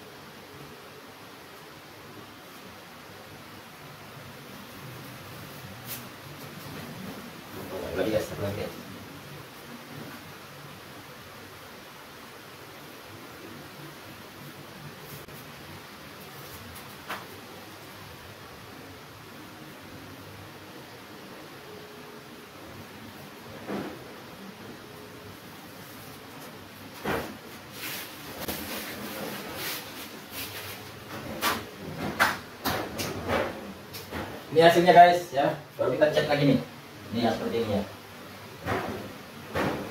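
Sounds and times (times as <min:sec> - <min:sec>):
faint steady hiss: 0:00.0 - 0:39.9.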